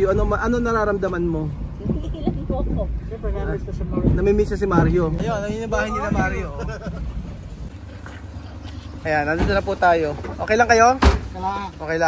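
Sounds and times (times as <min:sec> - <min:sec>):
car door slamming: 0:10.9 - 0:11.5.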